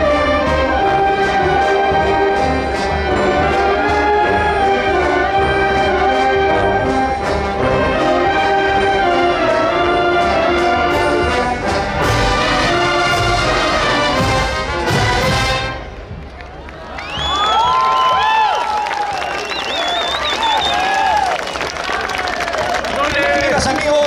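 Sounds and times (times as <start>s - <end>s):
wind band holding a chord: 0.0s - 16.1s
crowd cheering and whistling: 16.2s - 23.5s.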